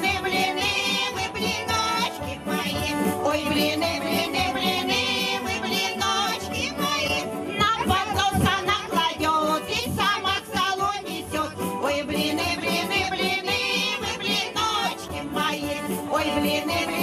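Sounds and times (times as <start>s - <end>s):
instrumental accompaniment: 0.0s - 17.0s
women singing folk songs: 0.0s - 17.0s.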